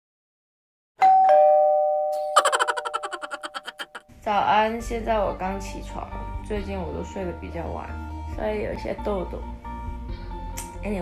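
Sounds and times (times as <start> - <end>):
two-note ding-dong chime: 1.0 - 2.3.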